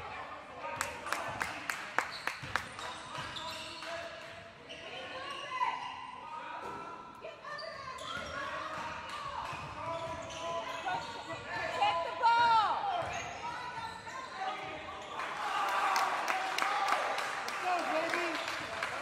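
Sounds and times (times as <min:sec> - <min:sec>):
sneaker squeaks: 0:02.0 - 0:06.0, 0:06.6 - 0:15.2
basketball bouncing on court: 0:08.0 - 0:11.8.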